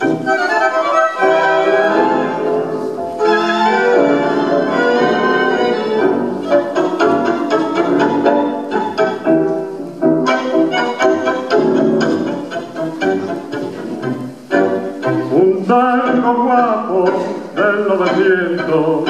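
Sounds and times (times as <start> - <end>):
tango orchestra playing: 0.0 - 19.0.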